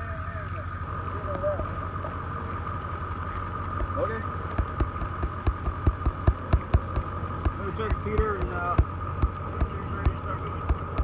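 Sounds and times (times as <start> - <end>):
steady hum: 0.4 - 11.0
fire crackling and popping: 3.3 - 11.0.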